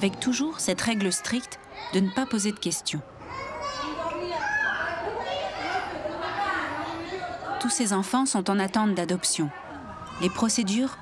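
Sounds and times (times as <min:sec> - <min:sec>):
women chattering: 0:00.0 - 0:11.0
toddlers babbling and calling out: 0:00.5 - 0:07.6, 0:09.6 - 0:11.0.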